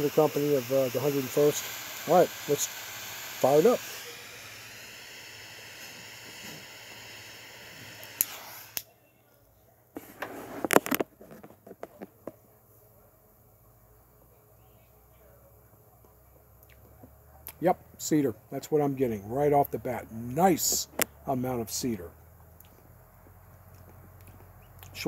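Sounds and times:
torch lighter flame hissing: 0.0s - 8.9s
short loud puffs: 8.1s - 8.8s.

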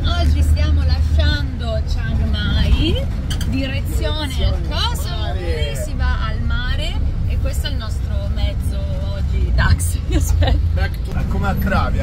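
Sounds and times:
woman talking: 0.0s - 10.6s
vehicle engine and road rumble: 0.0s - 12.0s.

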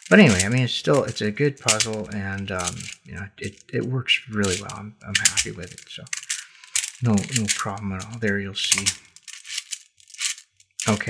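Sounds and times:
puzzle beads clicking and rattling: 0.0s - 11.0s.

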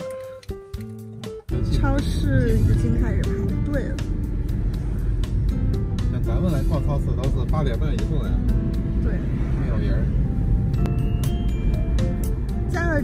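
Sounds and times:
car driving on road: 1.5s - 13.0s.

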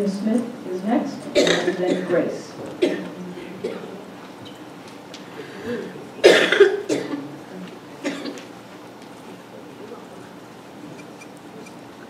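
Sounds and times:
person coughing: 1.4s - 2.2s, 5.7s - 7.2s.

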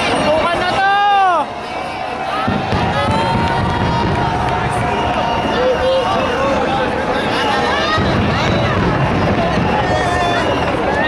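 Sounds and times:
crowd cheering and shouting: 0.0s - 11.0s
firework bursts rumbling: 1.5s - 11.0s.

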